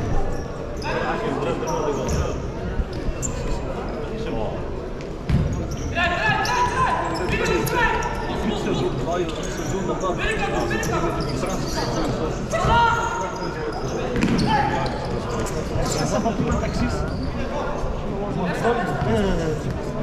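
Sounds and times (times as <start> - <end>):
ball bouncing on hard court: 5.3 - 5.7, 14.1 - 14.5.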